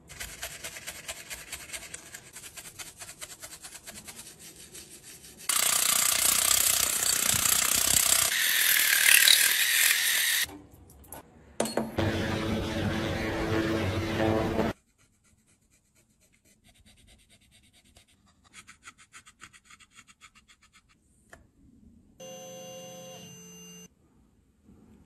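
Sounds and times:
brush scrubbing plastic: 0.0 - 5.7.

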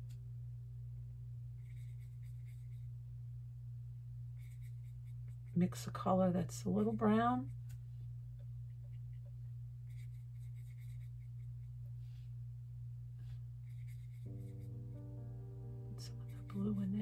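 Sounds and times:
steady low hum: 0.0 - 17.0
paintbrush dabbing and swishing: 13.2 - 14.7
soft background music: 13.7 - 17.0.

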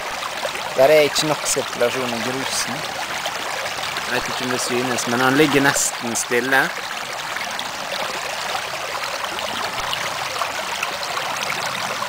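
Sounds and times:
water rushing through sluice box: 0.0 - 12.0.

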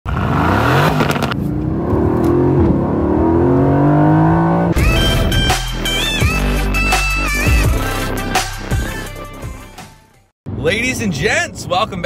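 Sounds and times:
car exhaust revving: 0.1 - 6.6
electronic music with a beat: 4.7 - 10.3.

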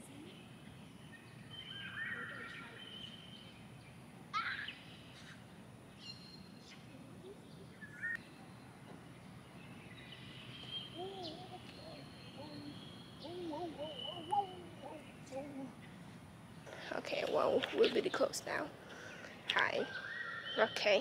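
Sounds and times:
birds chirping: 0.0 - 21.0
outdoor background noise: 0.0 - 21.0.

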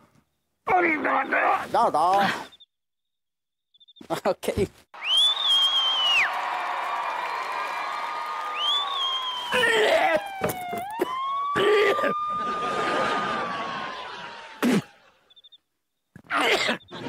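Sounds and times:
comic whistle swoops: 5.0 - 6.3, 8.5 - 9.6.

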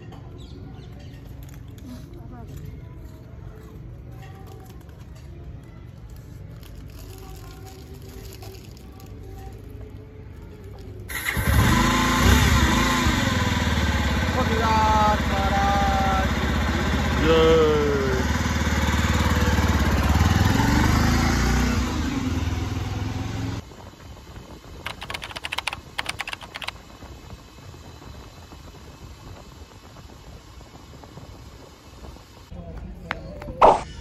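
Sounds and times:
motorcycle engine running: 11.1 - 23.6
rapid crackling noise: 24.8 - 26.8.

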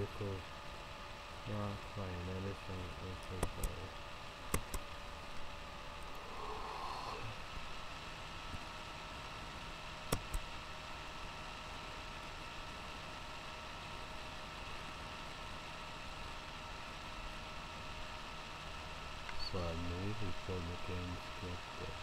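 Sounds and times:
background hiss: 0.0 - 10.6, 19.1 - 22.0
faint hum: 0.0 - 22.0
sharp clicks: 3.2 - 3.8, 4.5 - 5.0, 10.1 - 10.4.

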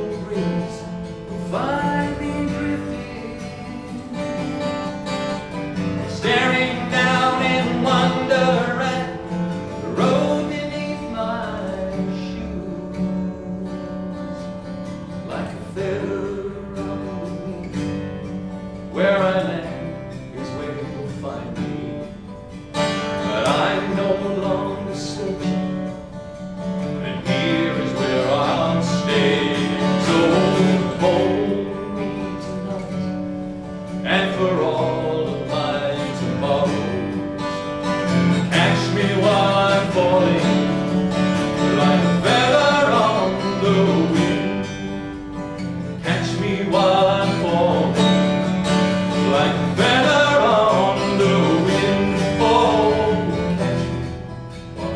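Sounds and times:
solo acoustic guitar: 0.0 - 54.9.

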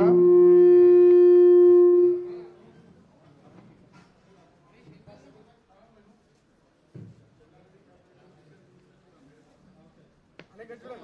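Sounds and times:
loud feedback tone: 0.0 - 2.6
faint hall noise: 0.0 - 11.0.

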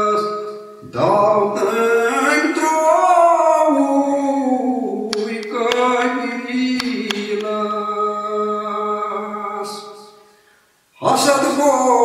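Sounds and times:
man singing unaccompanied: 0.0 - 10.2, 11.0 - 12.0.

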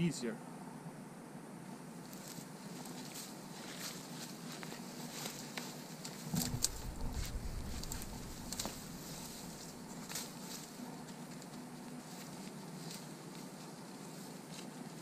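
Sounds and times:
spruce boughs rustling: 2.0 - 15.0
twigs crackling: 5.1 - 10.8
low rumble: 6.3 - 10.2.

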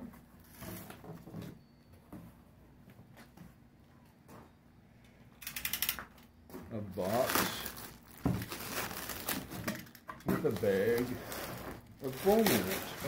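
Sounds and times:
plastic sheeting rustling: 7.0 - 13.0.

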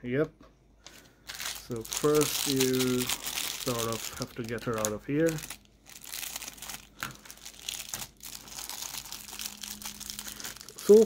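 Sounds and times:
plastic bag crinkling: 0.9 - 11.0.

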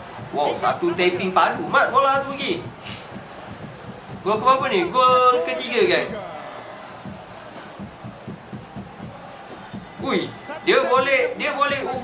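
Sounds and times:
stadium crowd noise: 0.0 - 12.0
steady low drumbeat: 0.0 - 12.0.

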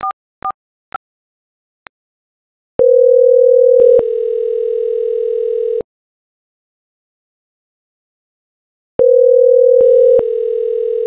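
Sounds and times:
phone ringback tone: 2.8 - 5.8, 9.0 - 11.0.

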